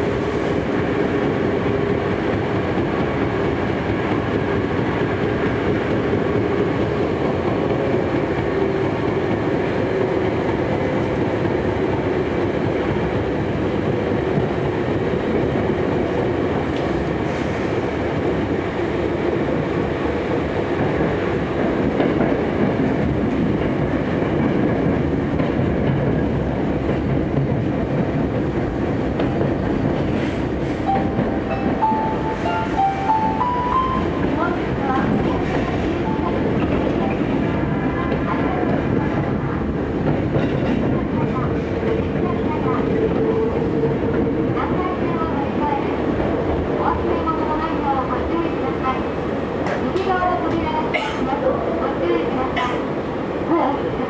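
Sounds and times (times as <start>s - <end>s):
train wheels on rail: 0.0s - 54.0s.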